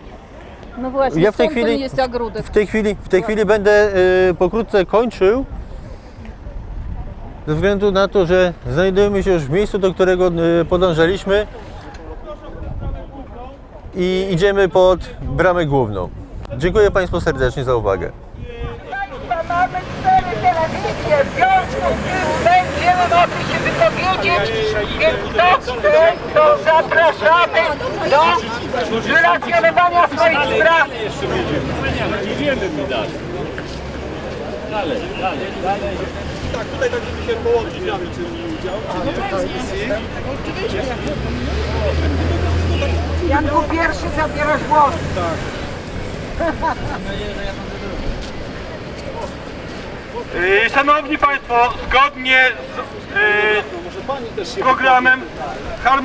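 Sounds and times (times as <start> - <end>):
street noise rumble: 0.0 - 56.0
people talking: 0.8 - 5.4, 34.4 - 45.5.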